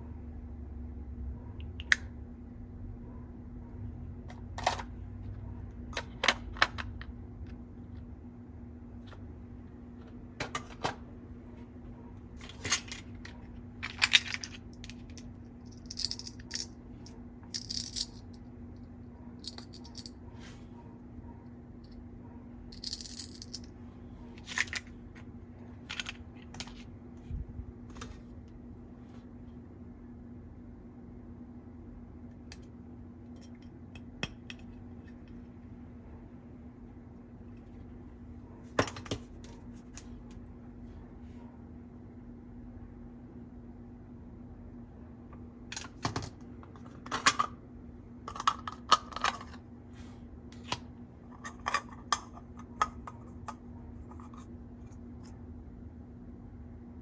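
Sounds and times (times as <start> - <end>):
plastic toy pieces clattering: 12.4 - 16.7, 17.5 - 18.2, 22.8 - 23.7, 25.8 - 26.8.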